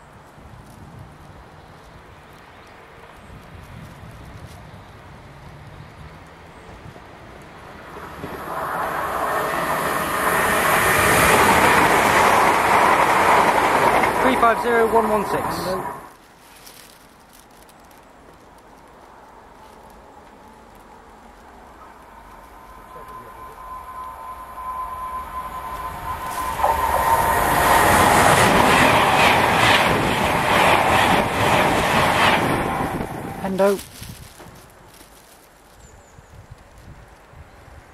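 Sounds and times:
train passing at speed: 6.1 - 16.2, 20.1 - 33.8
thin steady tone: 22.0 - 28.2.

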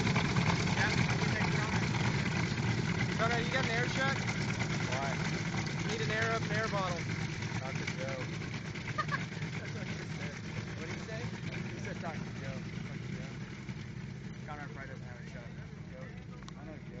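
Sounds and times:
engine idling: 0.0 - 17.0.

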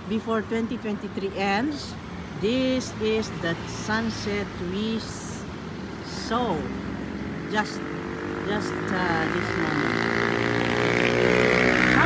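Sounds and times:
engine running: 7.5 - 12.0.

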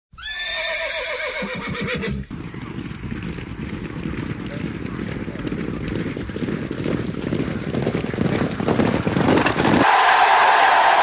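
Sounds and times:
horse whinnying: 0.1 - 2.3.

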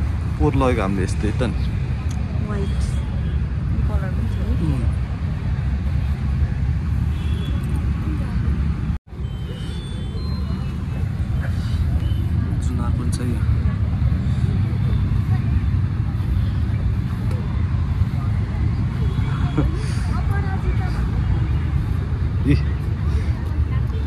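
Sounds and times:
faint voices talking: 0.0 - 24.0.

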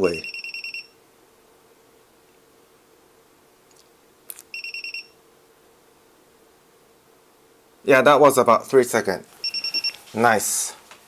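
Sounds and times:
multimeter short high beeps: 0.1 - 1.0, 4.5 - 5.2, 9.4 - 10.0.

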